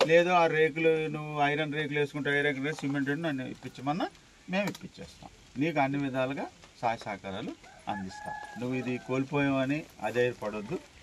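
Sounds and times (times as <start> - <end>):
men talking: 0.0 - 11.0
rooster crowing: 7.6 - 9.7.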